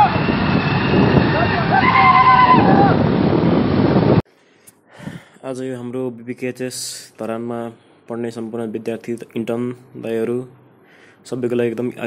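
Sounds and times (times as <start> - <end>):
motorbike engines rumbling: 0.0 - 4.2.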